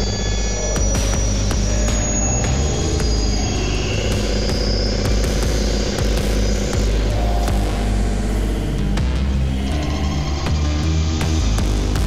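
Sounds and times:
heavy bass drone: 0.0 - 12.0
noisy electronic synth texture: 0.0 - 12.0.

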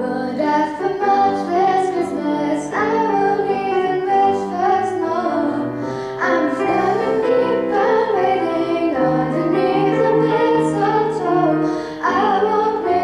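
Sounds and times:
girl singing: 0.0 - 13.0
grand piano: 0.0 - 13.0.

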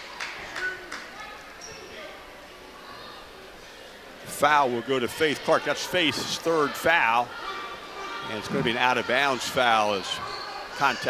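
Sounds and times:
crowd and player chatter: 0.0 - 11.0.

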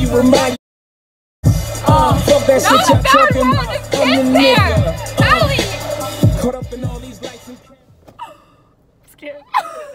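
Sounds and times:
music: 0.0 - 0.6, 1.4 - 7.9
woman gasping: 8.2 - 8.8.

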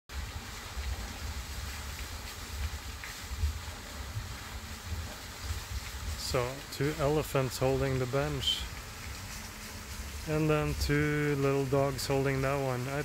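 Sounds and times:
faint steady hiss: 0.1 - 13.0.

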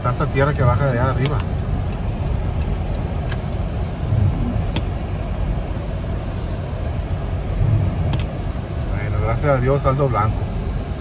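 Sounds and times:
car driving through rain: 0.0 - 11.0.

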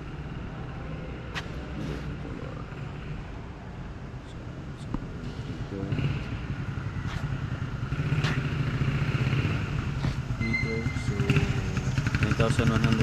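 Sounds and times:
motorcycle engine rumbling: 0.0 - 13.0.

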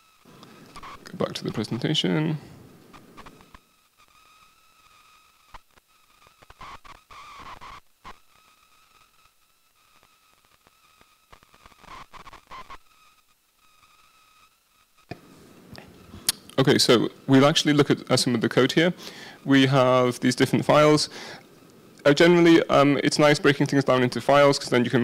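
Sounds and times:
high-pitched electrical whine: 0.0 - 25.0.

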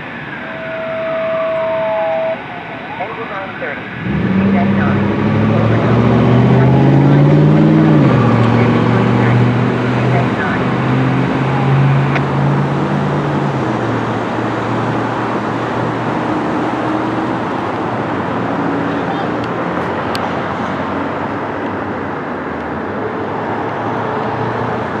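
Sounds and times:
traffic and road noise: 0.0 - 25.0
heavy truck engine pulling away: 3.9 - 21.6.

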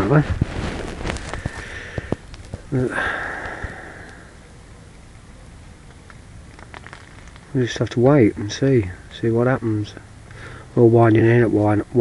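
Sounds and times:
outdoor background: 0.0 - 12.0
breathy hiss: 1.2 - 4.6, 10.2 - 10.8.

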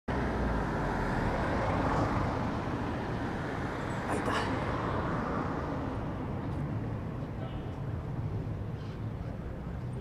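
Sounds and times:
road traffic passing: 0.1 - 10.0.

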